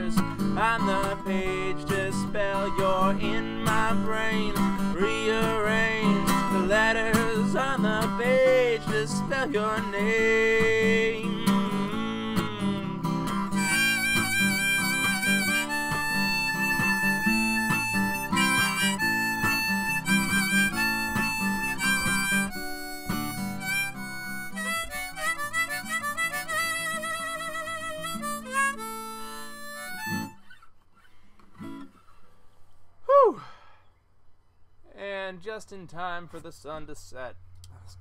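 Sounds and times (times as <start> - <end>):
strummed acoustic guitar: 0.0 - 32.6
harmonica solo: 4.6 - 30.6.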